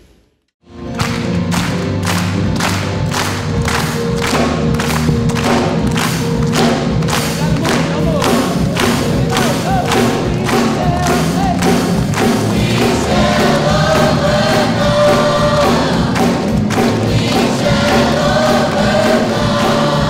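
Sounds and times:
held low chords: 0.7 - 20.0
choir clapping a steady beat: 0.8 - 20.0.

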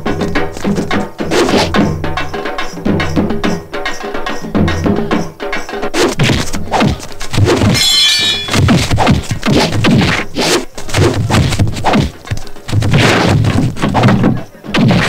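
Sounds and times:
ringing crash: 7.6 - 9.0
punch whacks and thuds: 8.5 - 15.0.

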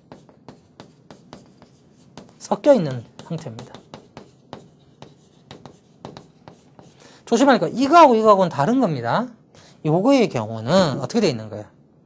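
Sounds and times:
chalk tapping and scratching: 0.0 - 8.0.

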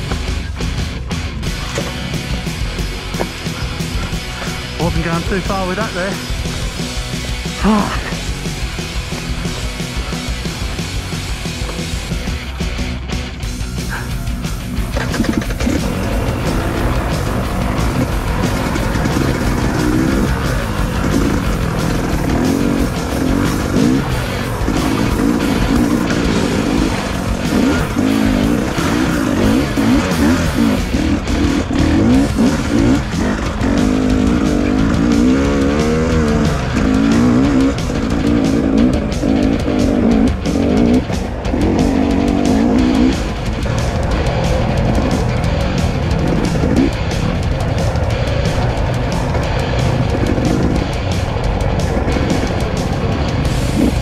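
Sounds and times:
rock music: 0.0 - 54.0
two-stroke motorbike engine revving: 0.0 - 54.0.

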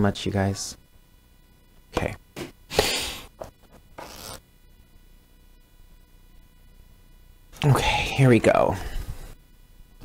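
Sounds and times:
book pages flipping: 3.4 - 4.4
paper rustling: 3.4 - 4.4.

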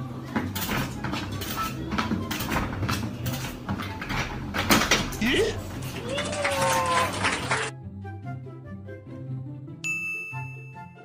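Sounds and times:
soft background music: 0.0 - 11.0
bright bell ding: 9.8 - 11.0.

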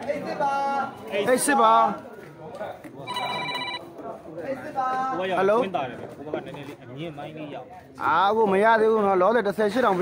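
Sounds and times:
faint voices: 0.7 - 4.7.

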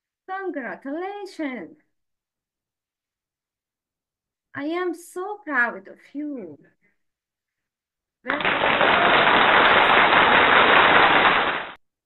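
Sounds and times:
burst of applause: 8.3 - 11.8.

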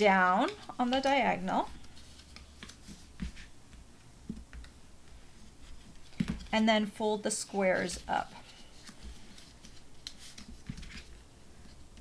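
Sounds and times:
cardstock rustling and tapping: 0.3 - 6.5, 7.6 - 12.0.

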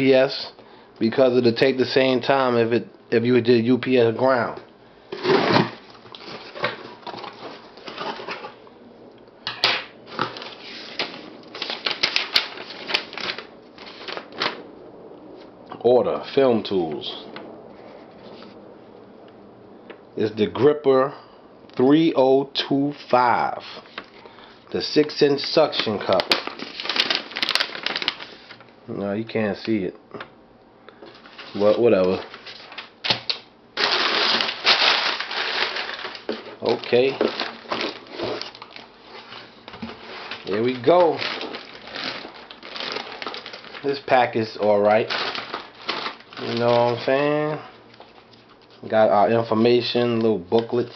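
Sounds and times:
paper crinkling and rustling: 5.2 - 8.6, 10.1 - 14.7, 22.9 - 24.2, 25.0 - 28.8, 31.0 - 50.9.

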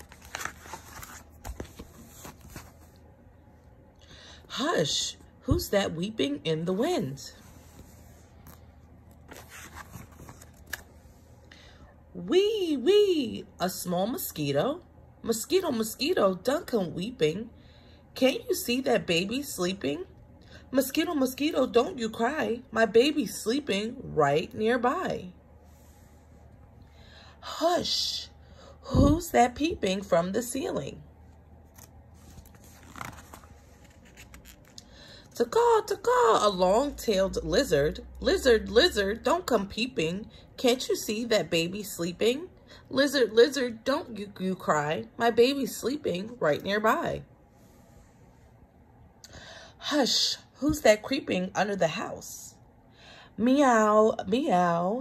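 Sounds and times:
paper pages turning: 0.0 - 3.0, 7.7 - 10.9, 31.6 - 34.8.

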